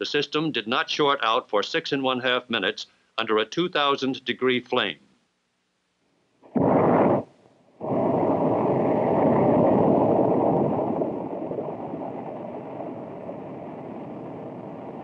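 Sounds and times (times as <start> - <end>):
rocket engine roar: 6.6 - 15.0.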